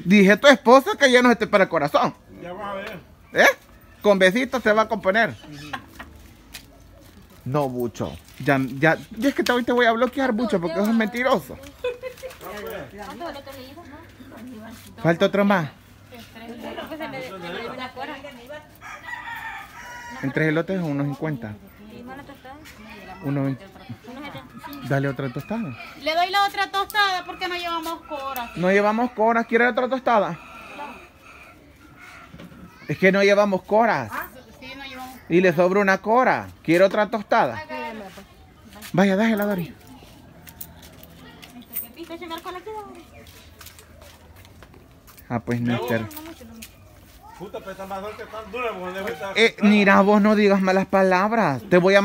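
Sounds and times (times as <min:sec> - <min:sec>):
faint voices talking: 0:01.9 - 0:52.0
rooster crowing: 0:18.7 - 0:20.9, 0:23.0 - 0:32.9, 0:47.6 - 0:50.8.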